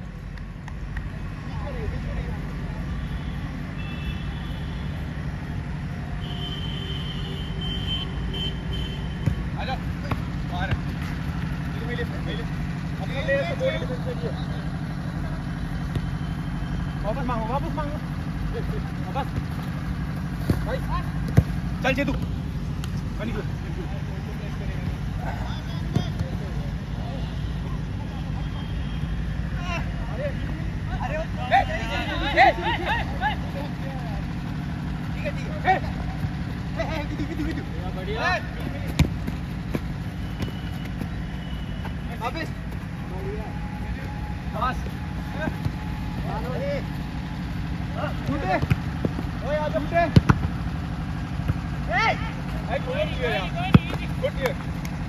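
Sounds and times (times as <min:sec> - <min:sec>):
distant players shouting: 0:02.8 - 0:55.0
football kick thuds: 0:09.2 - 0:11.2, 0:20.4 - 0:23.0, 0:25.8 - 0:26.5, 0:38.5 - 0:41.2, 0:48.3 - 0:49.3, 0:50.1 - 0:50.6, 0:53.6 - 0:54.6.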